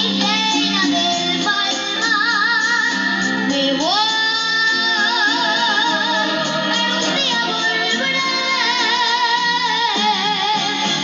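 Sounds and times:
girl singing into microphone: 0.0s - 11.0s
live band playing: 0.0s - 11.0s.

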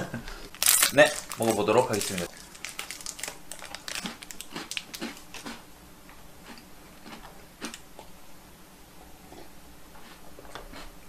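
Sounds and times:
chewing crisp biscuit crunches: 0.5s - 5.6s, 6.4s - 7.8s.

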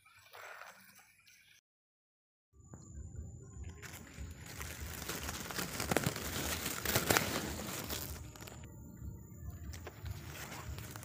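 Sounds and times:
leaves and stems rustling: 3.8s - 8.7s, 9.7s - 11.0s.

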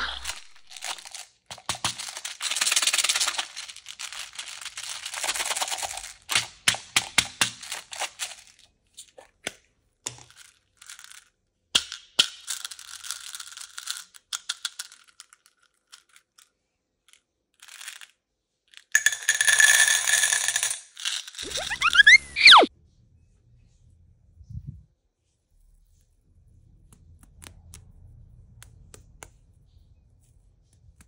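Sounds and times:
balls poured into metal tin: 0.0s - 8.6s
small balls rattling in plastic tub: 0.0s - 9.2s, 10.1s - 11.4s, 12.3s - 16.4s.

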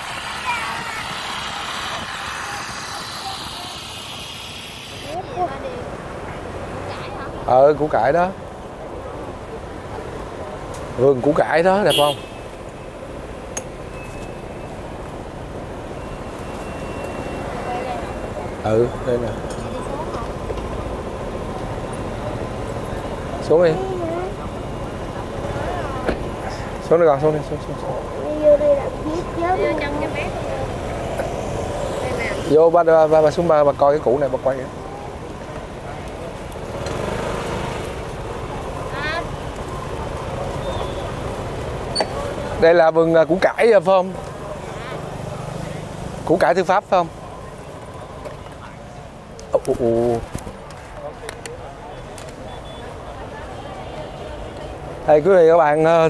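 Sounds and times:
motorbike engines rumbling: 0.0s - 56.0s
scooter traffic noise: 0.0s - 56.0s
voices talking: 0.0s - 56.0s.

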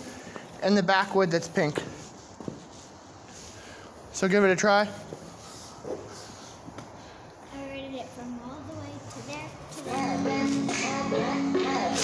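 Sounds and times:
rubber boots scuffing: 1.0s - 3.5s.

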